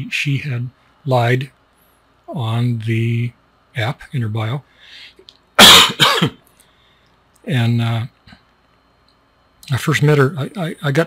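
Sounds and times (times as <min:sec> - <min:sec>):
man coughing: 0:05.6 - 0:06.4.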